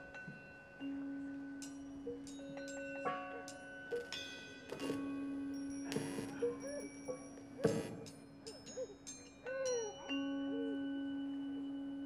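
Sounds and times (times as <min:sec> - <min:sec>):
low sustained tone: 0:00.0 - 0:12.0.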